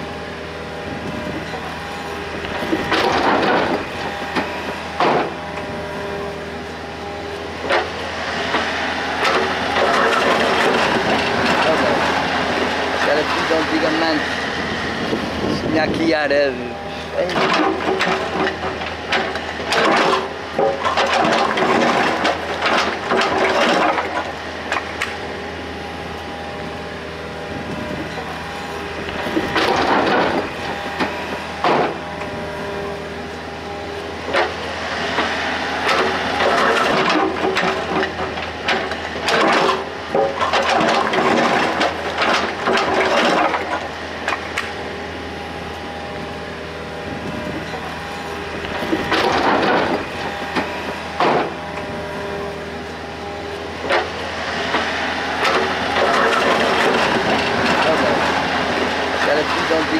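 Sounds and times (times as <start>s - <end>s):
excavator engine running: 0.0s - 59.9s.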